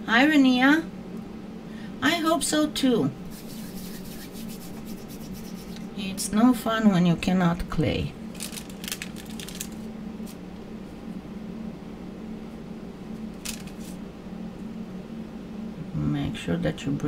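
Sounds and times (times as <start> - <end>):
steady low hum: 0.0 - 17.0
clay pieces rustling on paper: 8.3 - 10.4, 13.4 - 14.0.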